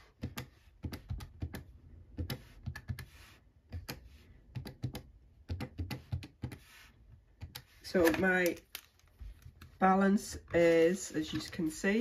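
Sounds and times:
calculator keys tapping: 0.0 - 3.1, 3.7 - 6.6.

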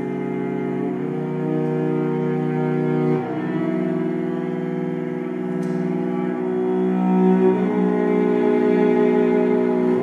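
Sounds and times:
cello bowing a held note: 0.0 - 10.0.

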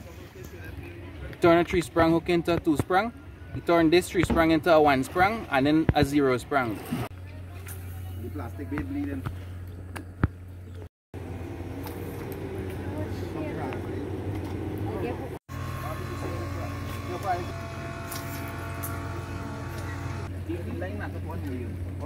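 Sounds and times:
outboard motor humming: 11.2 - 20.6.

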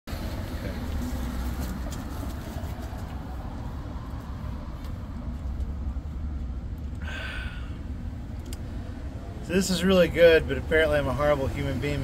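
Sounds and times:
low rumble of passing cars: 0.1 - 12.0.

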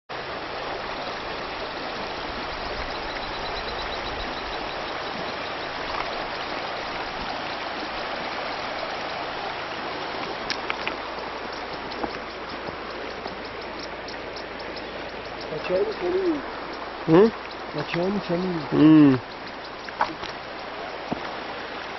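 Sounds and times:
river rushing over stones: 0.1 - 21.9.

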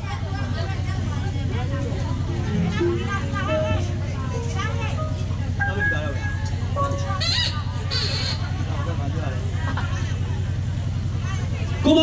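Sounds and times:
traditional ensemble playing: 1.8 - 7.3
high melody with slides: 1.9 - 7.2.

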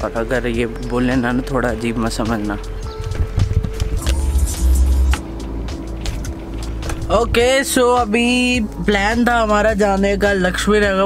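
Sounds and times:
background music: 0.0 - 11.0
low rumble: 3.2 - 9.1.

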